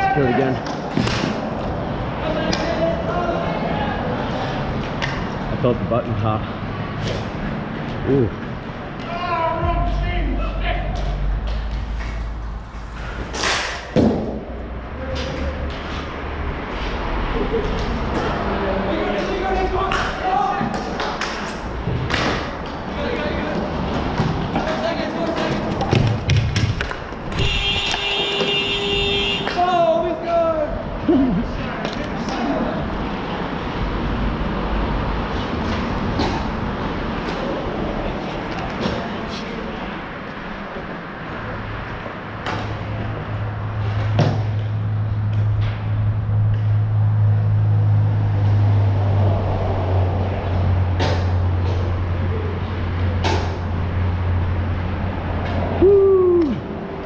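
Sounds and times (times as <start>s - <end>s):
players' voices: 0.0s - 13.9s, 17.0s - 27.4s, 28.4s - 34.2s, 35.5s - 43.7s
steady low hum: 6.4s - 15.0s
hockey sticks clacking on floor: 19.1s - 28.6s.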